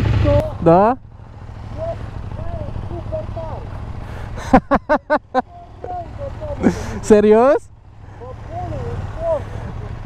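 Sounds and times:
motorcycle engines idling: 0.0s - 10.0s
laughter: 4.4s - 5.5s, 9.4s - 10.0s.

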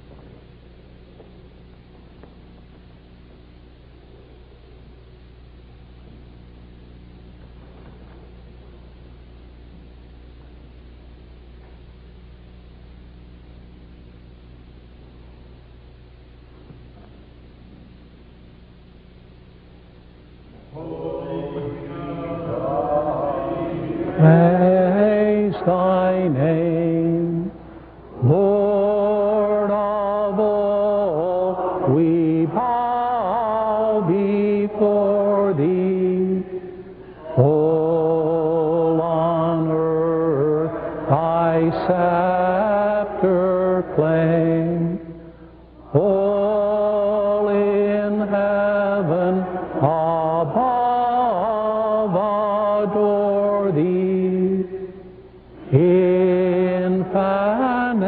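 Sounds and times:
slow chanted singing: 20.5s - 58.0s.

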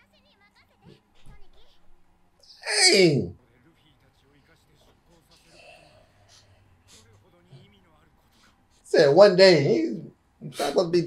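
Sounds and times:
faint dialogue: 0.5s - 11.0s
man exclaiming: 2.5s - 3.4s, 9.0s - 11.0s.

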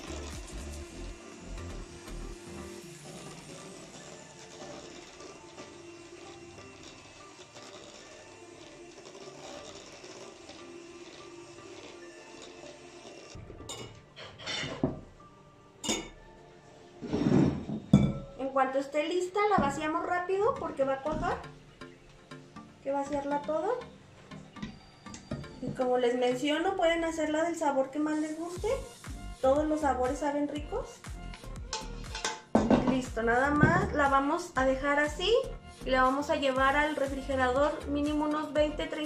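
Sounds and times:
electric hand mixer whirring: 0.0s - 13.4s
background music: 0.0s - 39.0s
metal pot and utensils clinking: 13.4s - 15.0s, 15.8s - 16.2s, 17.0s - 18.4s, 31.7s - 33.0s.

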